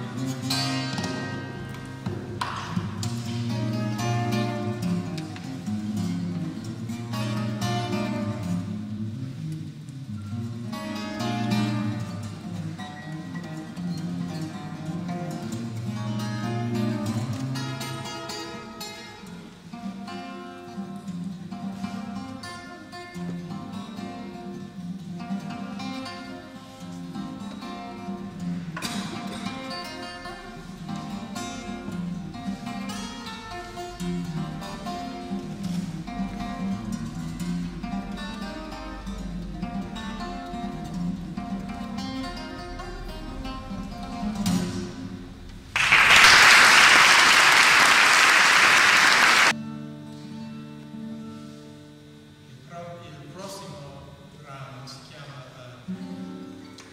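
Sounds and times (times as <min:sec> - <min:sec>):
fingerstyle acoustic guitar: 0:00.0 - 0:45.8, 0:49.5 - 0:52.5, 0:55.8 - 0:56.9
loud applause: 0:45.8 - 0:49.6.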